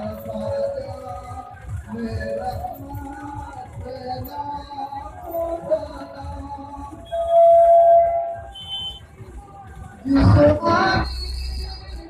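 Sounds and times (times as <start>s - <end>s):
music through loudspeakers: 0.0s - 12.0s
loud held tone: 7.0s - 9.0s.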